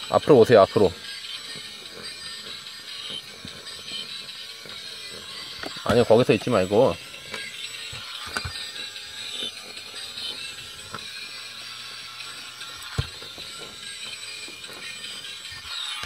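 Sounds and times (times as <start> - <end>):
toy truck motor whirring: 0.0 - 16.0.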